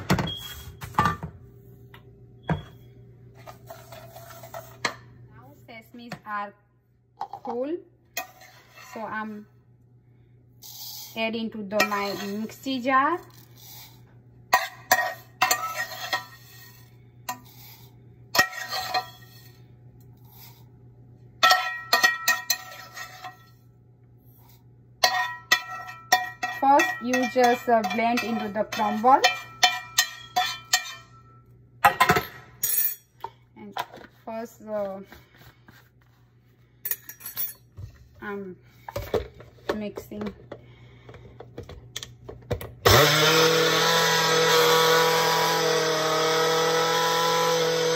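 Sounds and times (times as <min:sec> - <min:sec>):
spoon and pan clinking on jar: 0:25.0 - 0:33.3.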